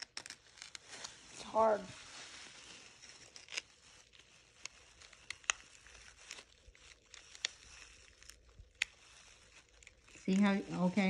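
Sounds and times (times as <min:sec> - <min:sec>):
plastic gloves crinkling: 0:00.0 - 0:11.0.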